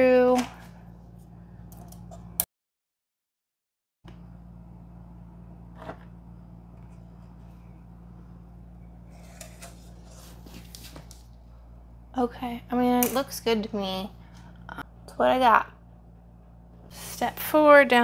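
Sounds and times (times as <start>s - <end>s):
low electrical hum: 0.0s - 2.4s, 4.1s - 18.0s.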